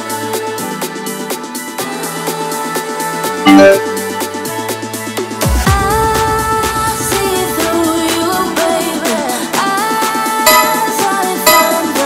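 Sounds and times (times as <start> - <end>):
pop music: 0.0 - 12.0.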